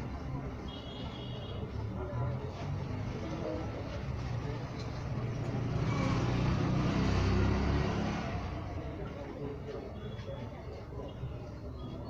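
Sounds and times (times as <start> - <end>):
faint voices: 0.0 - 12.0
motor vehicle rumble: 2.2 - 12.0.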